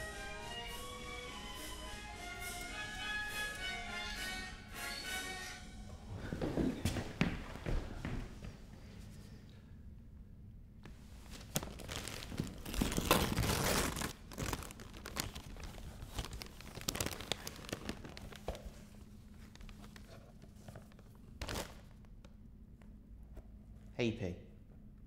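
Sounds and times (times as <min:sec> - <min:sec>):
paper crinkling and rustling: 0:11.2 - 0:22.0
wrapping paper tearing: 0:11.4 - 0:22.0.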